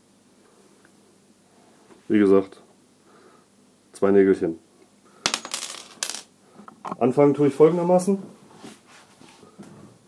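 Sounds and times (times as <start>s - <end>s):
nails clattering on table: 5.2s - 7.0s.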